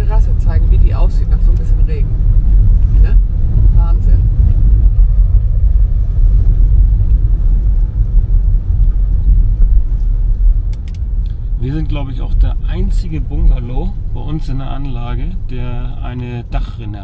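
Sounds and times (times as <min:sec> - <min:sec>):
car engine: 0:00.0 - 0:17.0
road noise on wet streets: 0:00.0 - 0:17.0.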